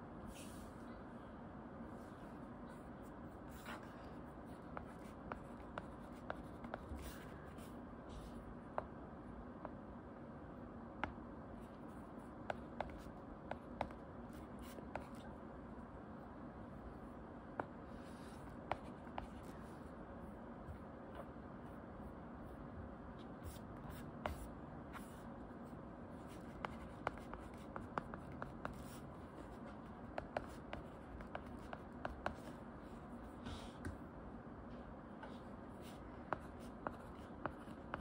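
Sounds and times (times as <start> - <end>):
faint room noise: 0.0 - 38.0
stylus writing on glass screen: 1.9 - 8.9, 11.0 - 15.4, 16.7 - 22.6, 23.2 - 34.0, 35.2 - 38.0.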